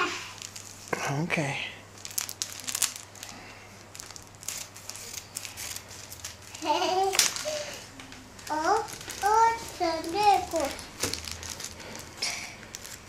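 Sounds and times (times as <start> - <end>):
plastic crinkling: 0.0 - 13.0
scissors cutting plastic packet: 2.1 - 7.6, 8.5 - 13.0.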